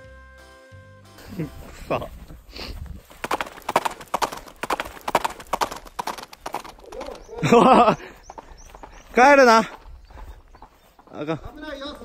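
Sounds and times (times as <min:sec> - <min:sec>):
horse hooves clip-clopping: 0:01.8 - 0:12.0.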